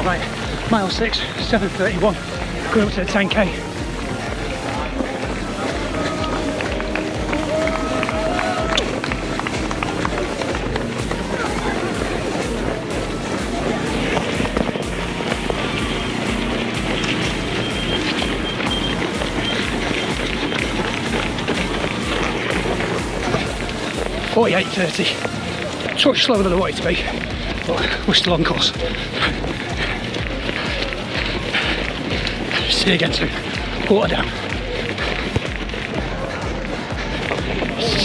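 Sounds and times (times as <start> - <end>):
hubbub of voices: 0.0 - 38.0
running footfalls: 0.0 - 38.0.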